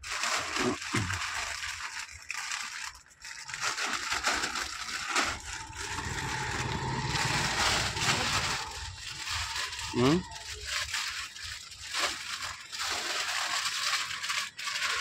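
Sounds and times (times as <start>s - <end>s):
plastic packets crinkling: 0.0s - 15.0s.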